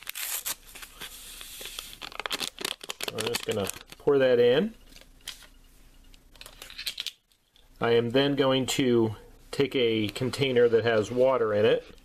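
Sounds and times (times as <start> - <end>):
paper packet tearing: 0.0 - 4.0.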